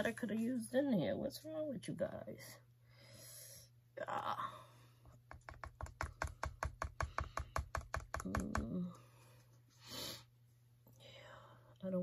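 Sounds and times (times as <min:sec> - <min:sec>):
woman speaking: 0:00.0 - 0:02.6, 0:11.8 - 0:12.0.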